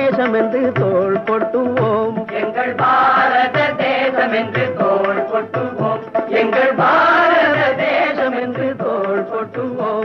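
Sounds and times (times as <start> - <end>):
group singing: 2.1 - 10.0.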